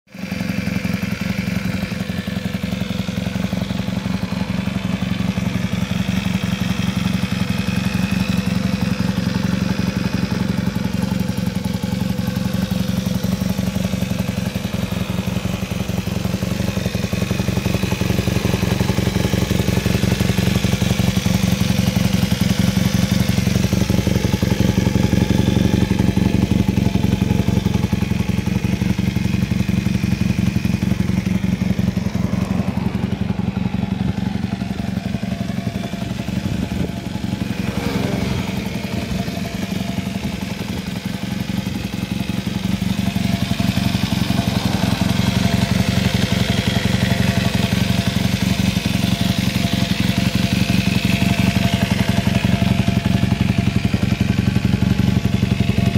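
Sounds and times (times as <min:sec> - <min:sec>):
motorcycle engine idling: 0:00.1 - 0:55.9.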